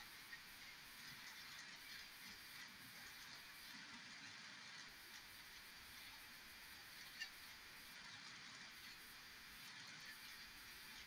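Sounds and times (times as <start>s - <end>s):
faint audio feed hiss: 0.0s - 11.0s.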